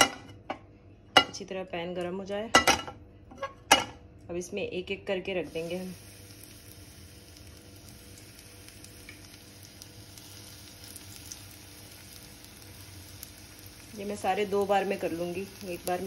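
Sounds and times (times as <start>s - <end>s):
bread sizzling in a pan: 5.4s - 16.0s.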